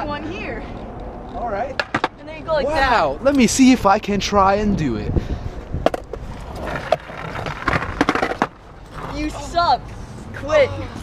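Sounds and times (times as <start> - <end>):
skateboard wheels rolling on concrete: 0.0 - 11.0
skateboard clacking: 1.6 - 2.3, 5.8 - 9.8.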